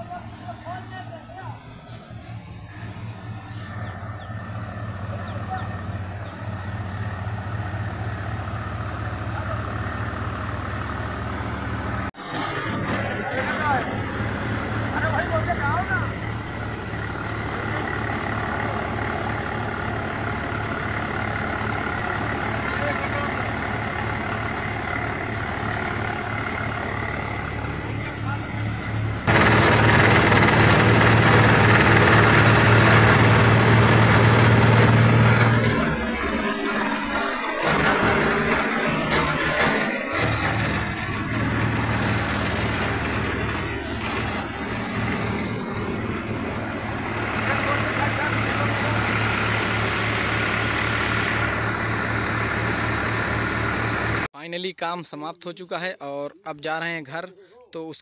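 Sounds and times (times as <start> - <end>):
tractor engine humming: 0.0 - 54.3.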